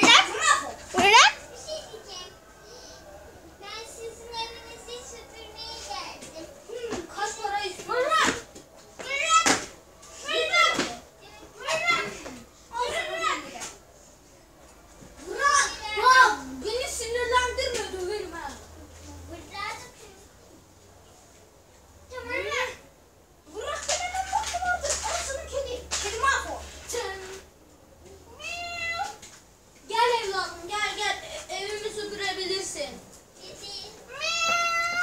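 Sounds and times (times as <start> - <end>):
child calling: 33.6 - 35.0
cat meowing: 34.1 - 35.0.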